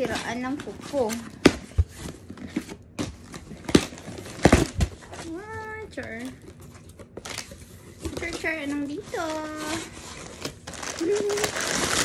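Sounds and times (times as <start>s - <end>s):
cardboard rustling and scraping: 0.0s - 12.0s.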